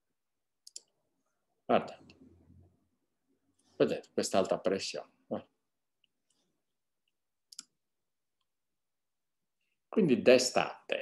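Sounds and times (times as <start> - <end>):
computer mouse click: 0.6 - 0.9, 7.5 - 7.8.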